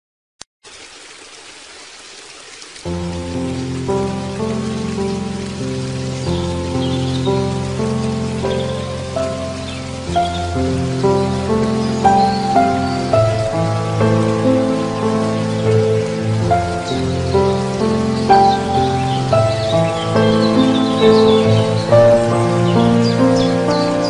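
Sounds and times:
rain-like water hiss: 0.6s - 24.0s
soft slow instrumental music: 2.9s - 24.0s.

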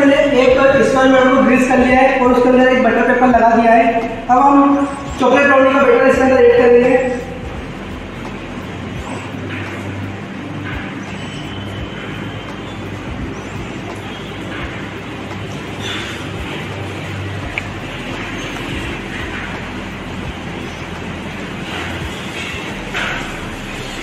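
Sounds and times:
low background hum: 0.0s - 24.0s.

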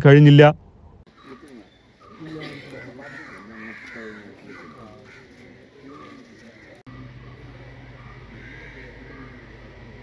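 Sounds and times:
crows cawing: 1.1s - 7.4s, 8.0s - 9.8s.

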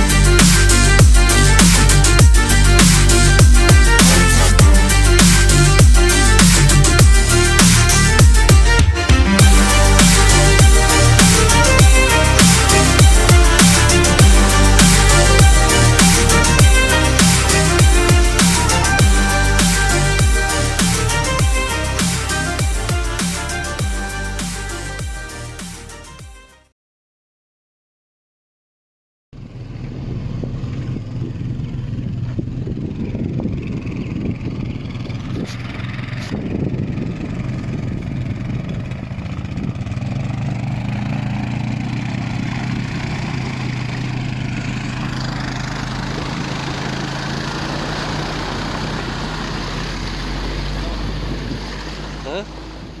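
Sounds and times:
small engine running: 0.0s - 25.8s, 29.4s - 52.9s
rushing wind or water: 46.0s - 53.0s.

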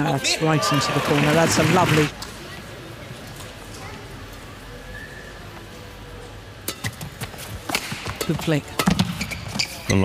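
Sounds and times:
racket striking shuttlecock: 6.6s - 9.2s.

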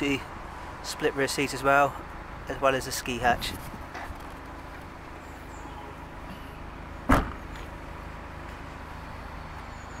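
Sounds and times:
car boot lid thud: 7.1s - 7.4s.

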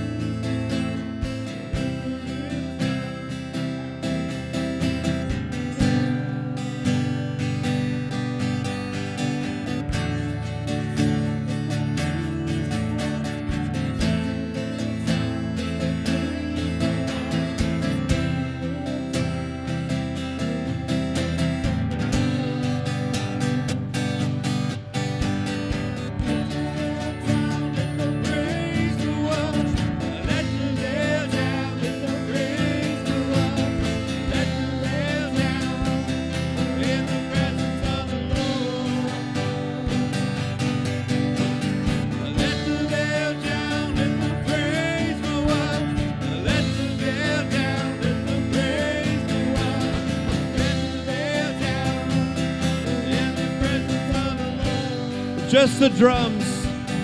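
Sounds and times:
acoustic guitar strumming: 0.0s - 57.0s
drums: 0.0s - 57.0s
keyboard: 0.0s - 57.0s.

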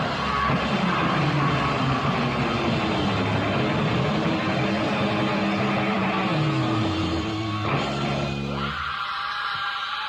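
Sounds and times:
rock band playing instrumental: 0.0s - 8.7s.

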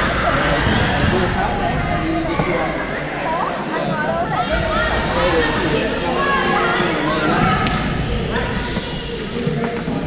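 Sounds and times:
voices echoing in gymnasium: 0.0s - 10.0s.

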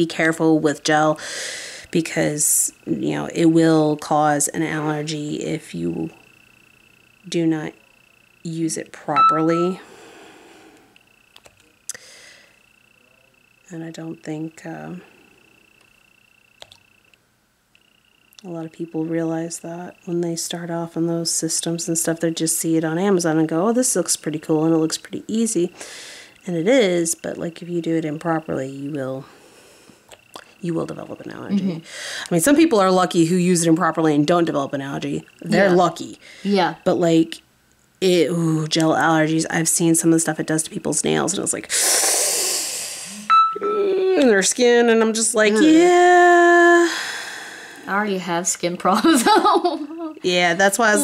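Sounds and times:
faint high-pitched whine: 0.0s - 51.0s
small click: 16.6s - 17.8s
woman humming: 31.4s - 31.9s, 35.4s - 35.9s, 36.5s - 36.8s, 42.4s - 44.5s, 45.4s - 47.0s, 49.8s - 51.0s.

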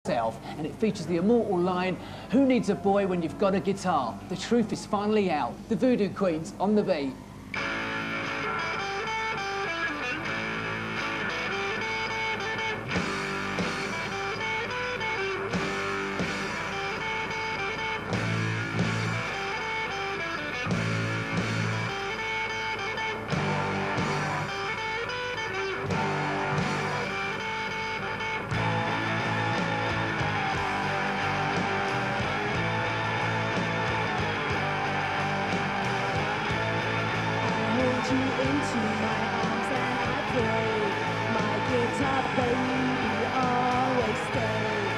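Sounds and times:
rock band playing live: 7.6s - 44.9s.

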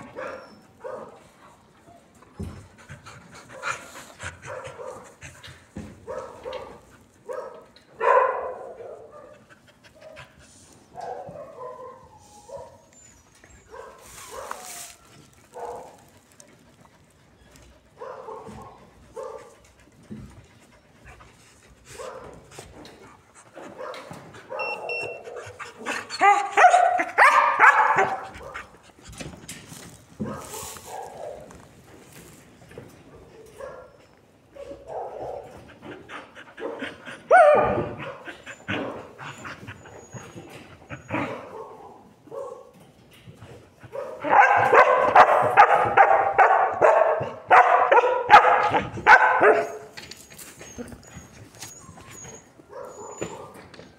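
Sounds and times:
dog whining and yipping: 37.3s - 41.4s, 50.5s - 53.6s.

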